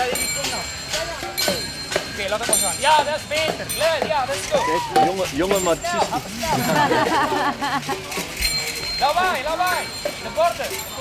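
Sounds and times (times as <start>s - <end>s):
children shouting and calling: 4.2s - 5.3s.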